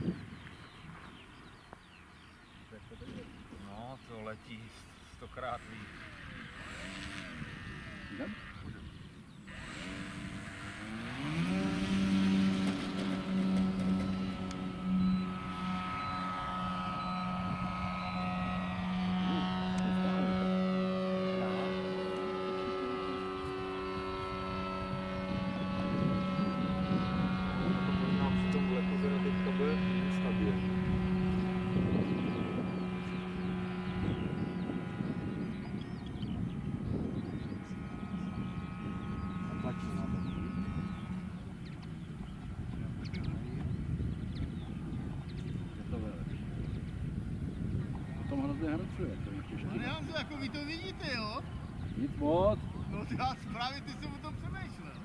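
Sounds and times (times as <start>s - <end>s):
model plane motor whining: 5.1s - 45.9s, 46.8s - 55.0s.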